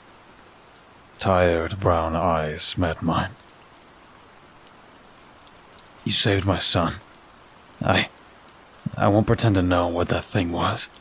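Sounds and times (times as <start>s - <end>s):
faint rain falling: 0.0s - 11.0s.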